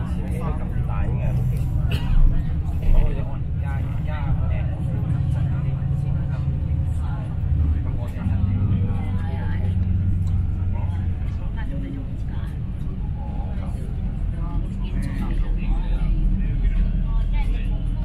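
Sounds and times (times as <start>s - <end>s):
people talking: 0.0s - 18.0s
vehicle engine and road rumble: 0.0s - 18.0s.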